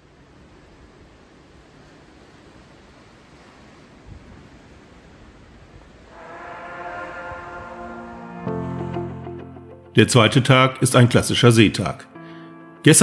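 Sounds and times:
wind rushing: 0:06.1 - 0:09.6
background music held chords: 0:06.1 - 0:10.4, 0:12.0 - 0:13.0.

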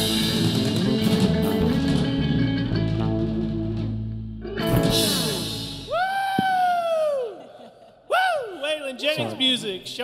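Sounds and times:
person whooping: 0:05.9 - 0:08.7.

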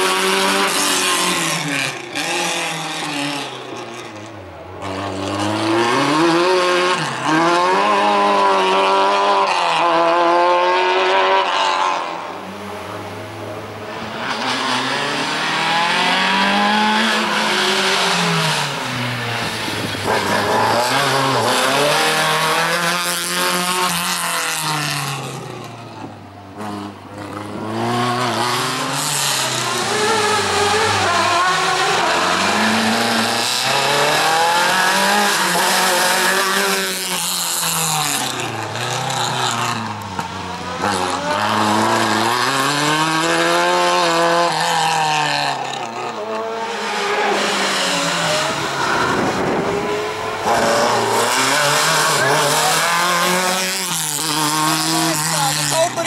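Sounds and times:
rally car engine revving: 0:00.0 - 0:56.0.

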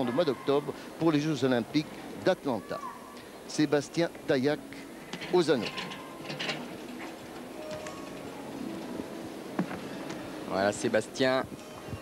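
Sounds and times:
faint music: 0:00.0 - 0:12.0
murmur of arena crowd: 0:00.0 - 0:12.0.

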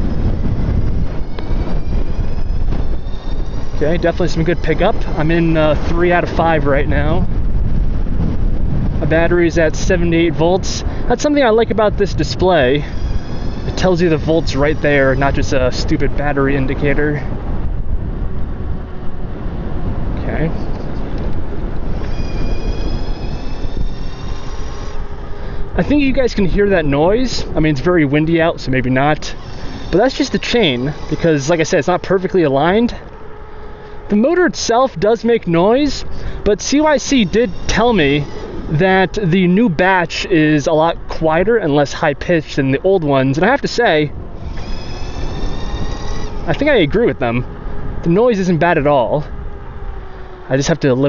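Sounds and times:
electric motor whine: 0:00.0 - 0:09.0, 0:12.2 - 0:15.6, 0:20.7 - 0:25.7, 0:28.8 - 0:34.2, 0:36.0 - 0:39.3, 0:44.1 - 0:48.2
wind rumbling on microphone: 0:00.0 - 0:51.0.

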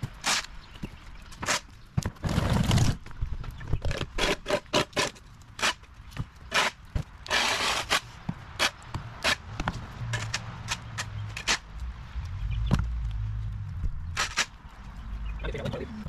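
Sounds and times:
shovel scraping wet concrete: 0:00.2 - 0:00.5, 0:03.9 - 0:05.8, 0:06.5 - 0:09.4, 0:14.2 - 0:14.6.

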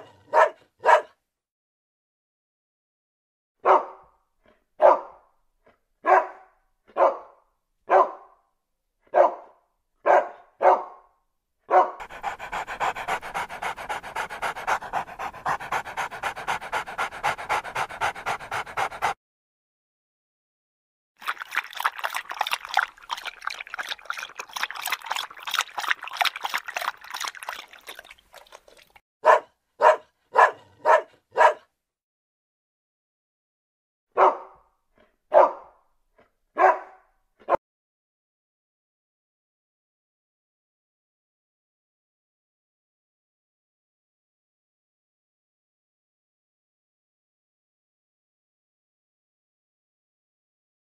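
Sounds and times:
dog barking: 0:00.0 - 0:01.2, 0:03.6 - 0:04.2, 0:04.8 - 0:05.3, 0:06.0 - 0:08.4, 0:09.1 - 0:11.1, 0:11.7 - 0:12.2, 0:29.2 - 0:31.7, 0:34.1 - 0:34.7, 0:35.3 - 0:35.8, 0:36.6 - 0:37.6
rapid pulsing dog sounds: 0:12.0 - 0:19.2, 0:21.2 - 0:29.0.

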